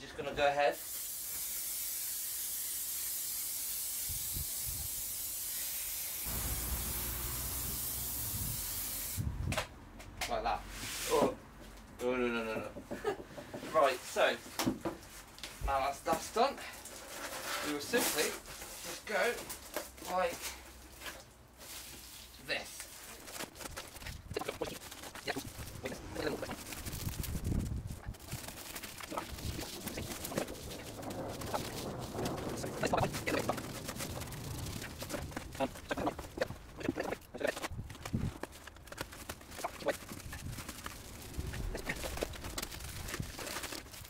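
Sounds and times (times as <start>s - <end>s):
foil insulation crinkling: 15.1s - 44.0s
high-pitched garbled voices: 24.0s - 26.7s, 29.0s - 31.8s, 32.5s - 33.7s, 34.7s - 37.7s, 39.5s - 40.3s, 41.4s - 42.3s.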